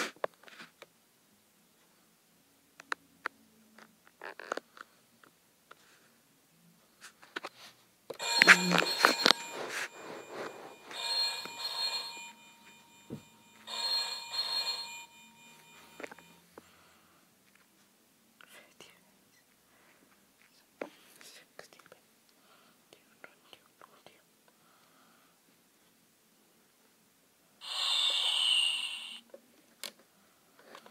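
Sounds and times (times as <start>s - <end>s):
electronic game beeping tones: 8.2s - 16.4s.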